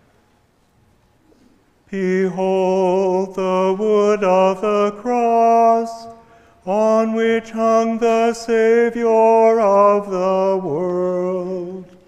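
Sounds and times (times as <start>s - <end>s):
man chanting: 2.0s - 12.0s.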